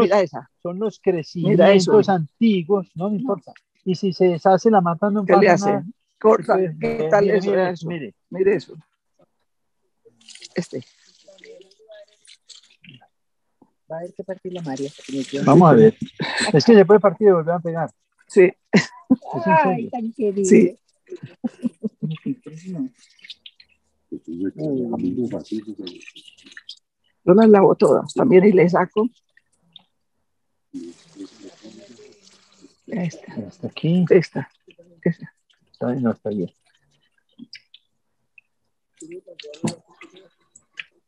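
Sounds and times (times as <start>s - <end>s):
water running from hose: 10.2s - 12.9s, 14.4s - 17.0s, 30.8s - 34.7s
water from hose splashing: 10.2s - 13.1s, 14.3s - 16.8s, 20.4s - 26.8s, 30.8s - 37.7s, 38.4s - 40.9s
quiet voices: 18.3s - 23.3s, 24.1s - 26.6s, 30.8s - 33.8s, 39.0s - 40.4s.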